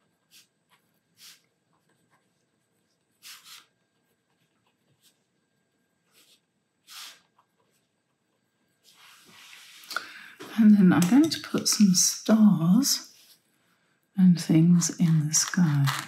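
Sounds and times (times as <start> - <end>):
pen scratching on paper: 0.0 - 2.4, 3.1 - 5.2.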